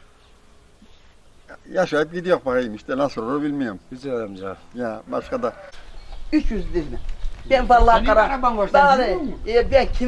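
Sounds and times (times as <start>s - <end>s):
flying insect buzzing: 0.0s - 6.6s
man speaking: 1.5s - 5.7s, 6.3s - 7.0s.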